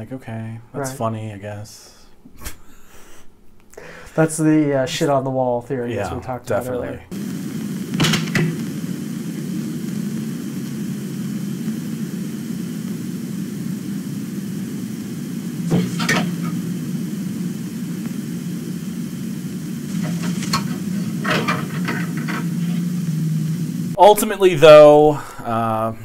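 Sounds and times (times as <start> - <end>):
low hum with hiss: 0.0 - 26.0.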